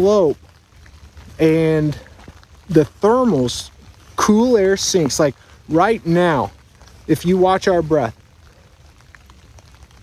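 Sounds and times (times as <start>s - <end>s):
light rain hiss: 0.0s - 10.0s.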